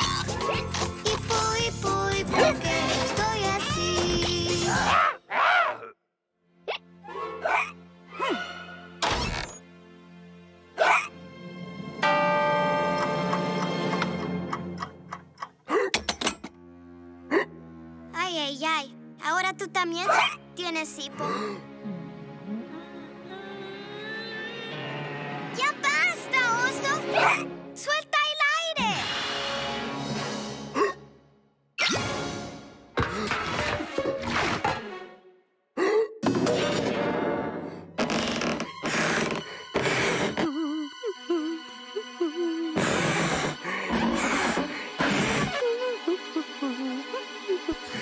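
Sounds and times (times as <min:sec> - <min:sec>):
background music: 0:00.0 - 0:48.0
held musical chord: 0:11.8 - 0:15.1
alarm clock ticking: 0:12.0 - 0:15.3
breathy blows into balloon: 0:38.8 - 0:40.9, 0:42.6 - 0:45.8.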